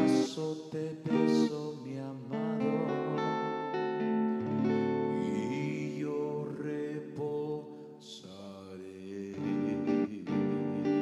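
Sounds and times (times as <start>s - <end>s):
strummed guitar: 0.0s - 11.0s.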